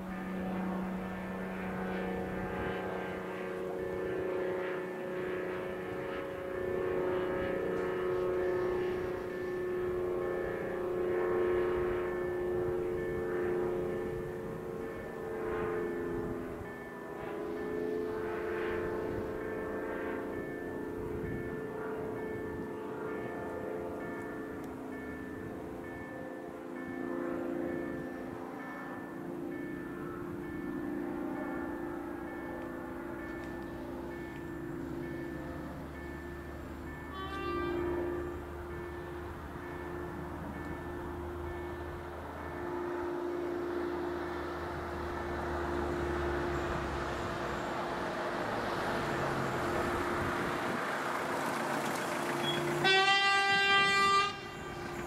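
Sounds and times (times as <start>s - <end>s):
level crossing bell ringing: 0.0s - 44.1s
low engine drone: 0.0s - 55.0s.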